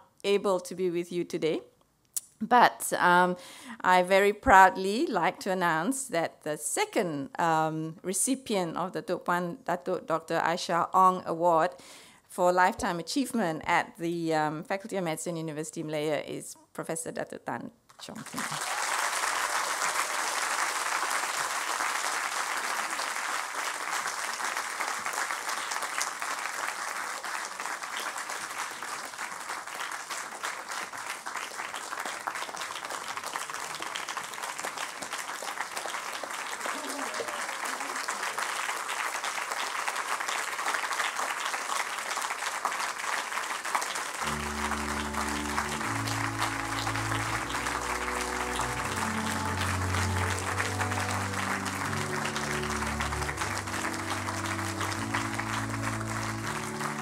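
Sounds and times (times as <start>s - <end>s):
audience applauding: 18.2s - 57.0s
recorded music with low chords: 44.3s - 57.0s.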